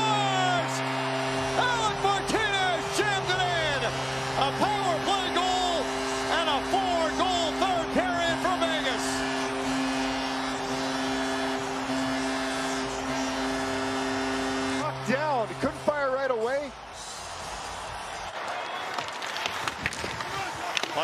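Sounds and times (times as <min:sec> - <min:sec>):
goal music: 0:00.0 - 0:16.0
goal horn blast: 0:00.0 - 0:18.3.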